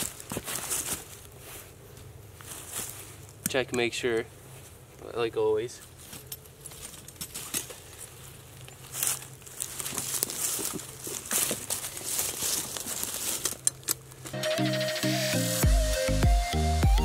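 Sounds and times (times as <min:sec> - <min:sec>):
dry leaves rustling and crunching: 0:00.0 - 0:03.4, 0:05.8 - 0:14.4
electronic dance music: 0:14.4 - 0:17.0.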